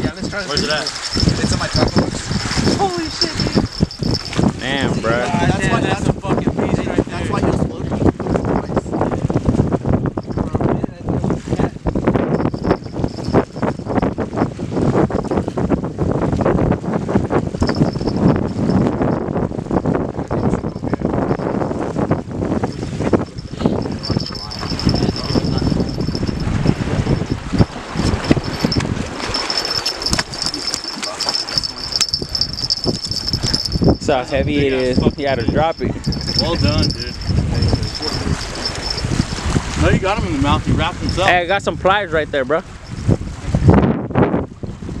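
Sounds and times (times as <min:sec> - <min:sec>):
wind buffeting microphone: 0:00.0 - 0:45.0
high-pitched tone: 0:00.5 - 0:05.4.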